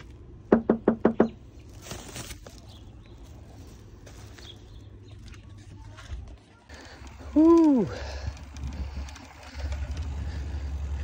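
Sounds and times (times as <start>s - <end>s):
knuckles knocking on door: 0.5s - 1.4s.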